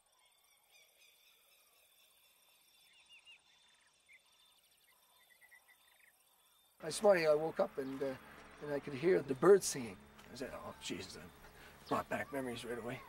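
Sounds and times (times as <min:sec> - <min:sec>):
faint birdsong chirps: 0:00.0 - 0:13.0.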